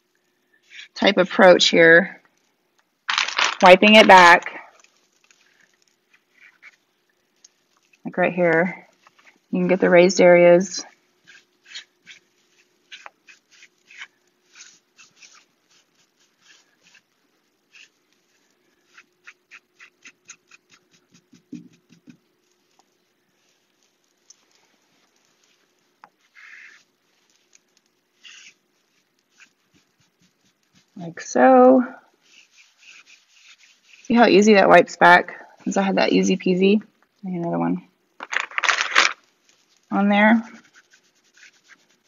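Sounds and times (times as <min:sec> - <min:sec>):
faint steady hum: 0:00.0 - 0:42.0
wipe rubbing on wooden door: 0:32.2 - 0:34.2.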